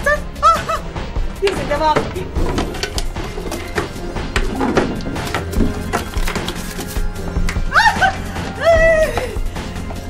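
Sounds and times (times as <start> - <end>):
background music: 0.0 - 10.0
wooden drawers knocking and clattering: 1.4 - 6.6.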